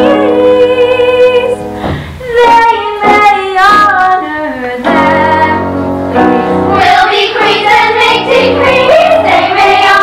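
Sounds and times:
girl singing: 0.0 - 1.6, 2.2 - 5.8, 6.7 - 10.0.

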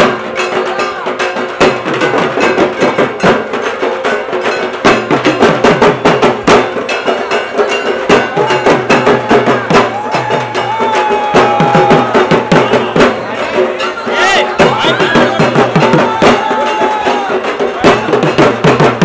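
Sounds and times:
barrel drum beaten with sticks: 0.0 - 19.0
crowd voices: 0.0 - 19.0.

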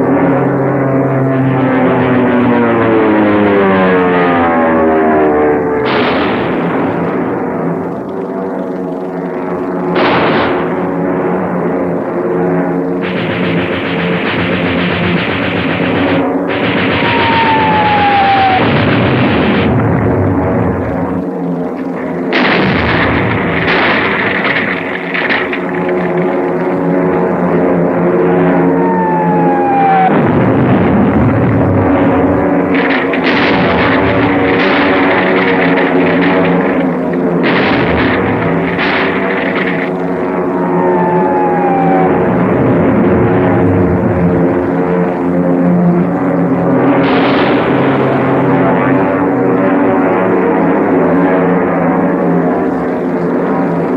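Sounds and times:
dramatic film score: 1.4 - 51.3
explosions: 5.8 - 7.4, 10.0 - 11.0, 13.0 - 21.1, 22.3 - 27.3, 28.5 - 44.6, 47.0 - 49.0
falling bomb whistle: 16.5 - 19.8, 28.4 - 30.8, 40.4 - 43.6.

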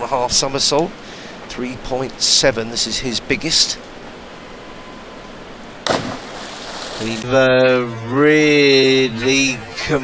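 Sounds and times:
faint arena hiss: 0.0 - 10.0
diver splashing into pool: 5.8 - 7.2.

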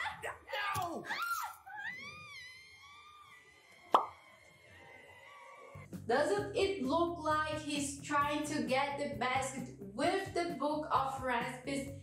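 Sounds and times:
cartoon girl screaming: 0.0 - 3.7
sharp pop: 3.9 - 4.1.

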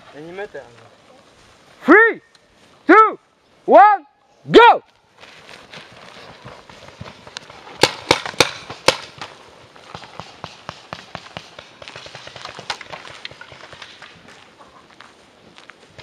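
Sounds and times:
running footsteps on grass: 0.0 - 2.9, 4.8 - 16.0
paintball markers firing: 7.4 - 14.1.

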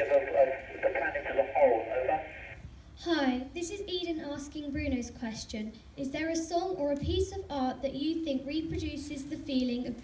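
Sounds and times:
man speaking over radio: 0.0 - 2.6.

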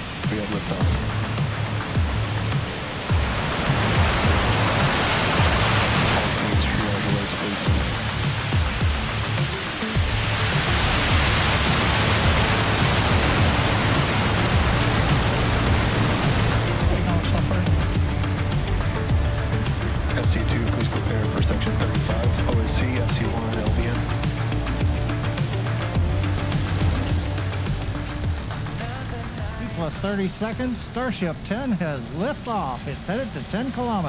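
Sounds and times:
background music: 0.0 - 34.0
rocket engines roaring: 0.0 - 34.0.

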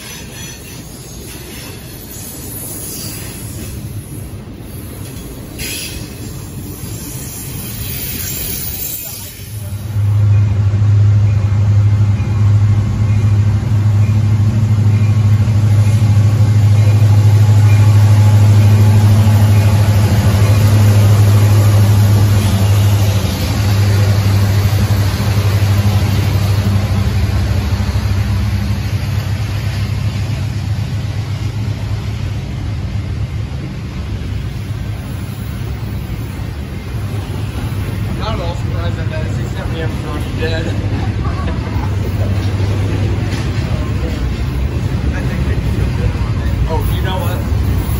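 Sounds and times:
locomotive engine hum: 0.0 - 47.9
moving train cars: 0.0 - 47.9.

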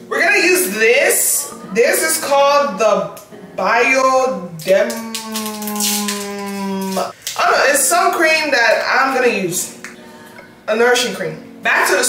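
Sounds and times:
woman humming: 4.5 - 7.2.

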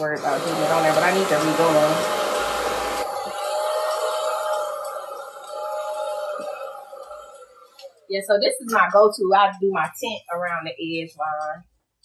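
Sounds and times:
hair dryer blowing: 0.0 - 7.8.

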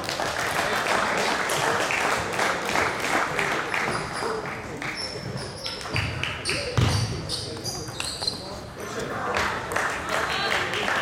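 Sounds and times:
shoes squeaking on wooden floor: 3.8 - 8.7.

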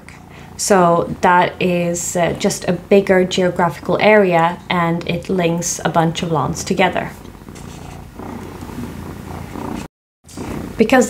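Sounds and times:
cat purring: 0.0 - 11.0.

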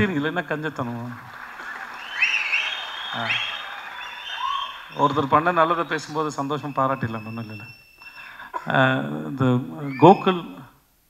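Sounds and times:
audience applauding and cheering: 0.0 - 8.5
high rising whistles: 1.3 - 8.4, 9.7 - 10.6.

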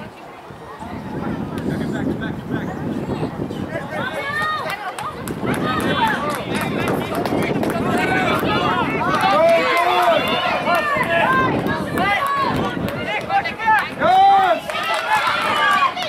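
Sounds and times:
players and spectators shouting: 3.7 - 16.0
long loud shout: 7.8 - 16.0.

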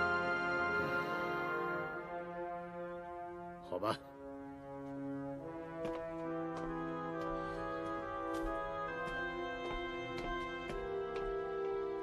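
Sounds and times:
slow sustained orchestral chords: 0.0 - 12.0.

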